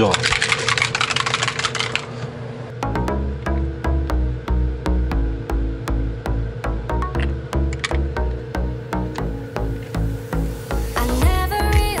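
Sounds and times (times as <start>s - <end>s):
music with steady beat: 2.8s - 12.0s.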